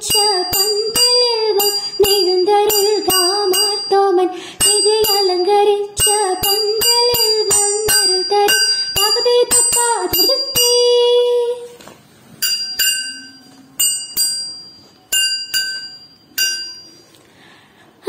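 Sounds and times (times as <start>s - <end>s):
sharp rhythmic strikes: 0.0s - 11.0s, 12.4s - 17.2s
small cymbals ringing: 0.0s - 11.3s, 12.4s - 17.2s.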